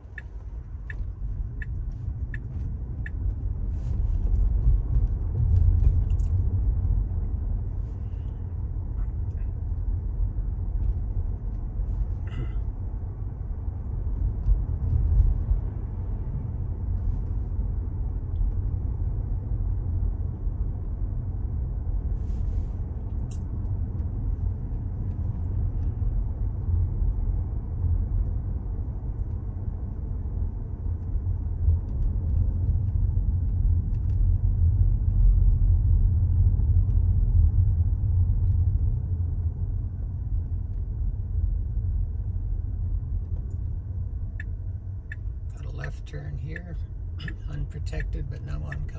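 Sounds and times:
road and tyre rumble in car: 0.0s - 48.9s.

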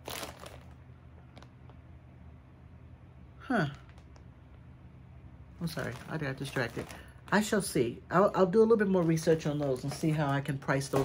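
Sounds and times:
plastic packaging crinkling: 0.0s - 1.8s, 5.6s - 7.7s, 8.4s - 11.0s
low room hum: 0.0s - 11.0s.

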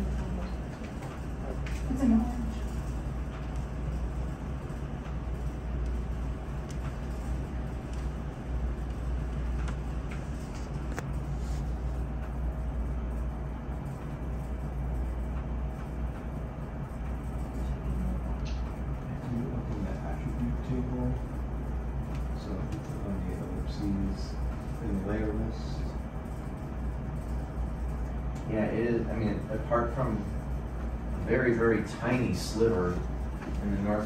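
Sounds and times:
low room hum: 0.0s - 34.0s.

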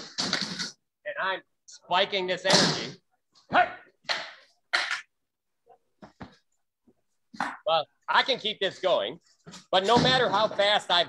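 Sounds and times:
man shouting: 3.5s - 3.9s.

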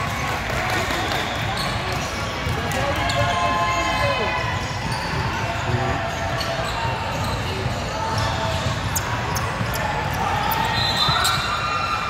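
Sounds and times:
shoe squeaks: 4.9s - 11.9s.

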